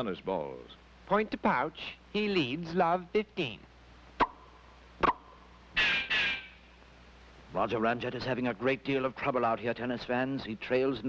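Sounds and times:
cartoon racket hitting ball: 0:05.0 - 0:05.2.

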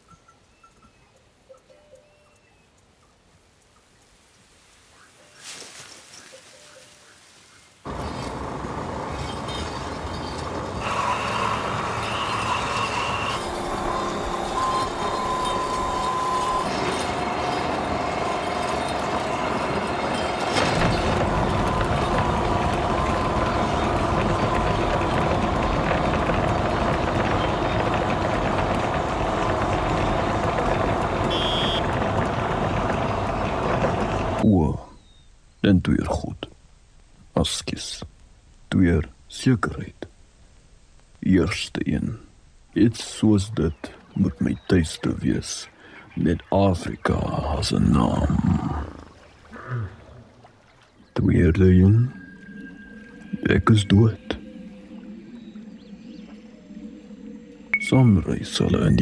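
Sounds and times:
train rumbling on rails: 0:07.9 - 0:34.4
wheel squealing: 0:07.9 - 0:34.4
short pulsing high tone: 0:10.8 - 0:19.7, 0:29.0 - 0:32.1.

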